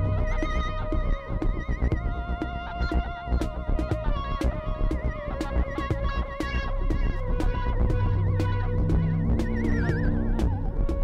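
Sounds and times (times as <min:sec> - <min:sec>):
dense low bass: 0:05.9 - 0:11.0
held synth tones: 0:08.0 - 0:11.0
high synth tone with vibrato: 0:08.1 - 0:10.8.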